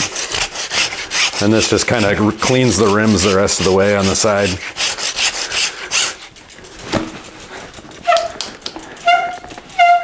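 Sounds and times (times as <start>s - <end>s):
bicycle rim brake squealing: 0.0s - 6.4s, 7.3s - 10.0s.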